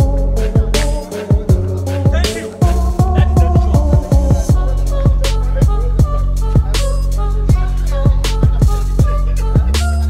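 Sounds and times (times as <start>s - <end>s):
background music with a beat: 0.0s - 10.0s.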